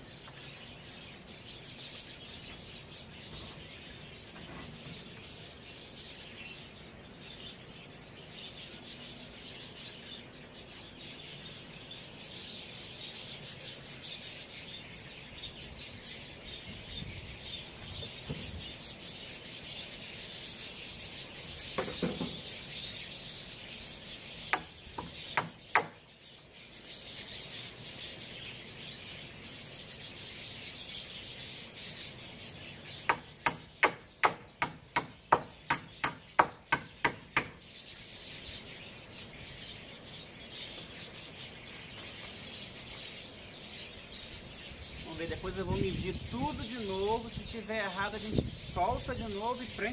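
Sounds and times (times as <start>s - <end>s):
hammer nailing wooden planks: 33.1s - 37.5s.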